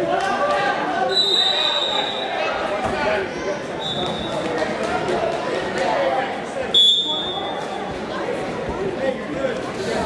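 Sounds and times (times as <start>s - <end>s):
high steady whistle tone: 1.1s - 2.4s, 6.8s - 7.6s.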